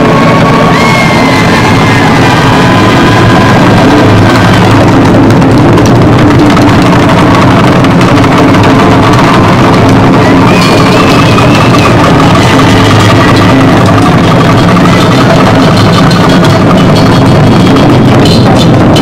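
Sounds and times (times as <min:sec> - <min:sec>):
taiko ensemble drumming: 0:00.0 - 0:19.0.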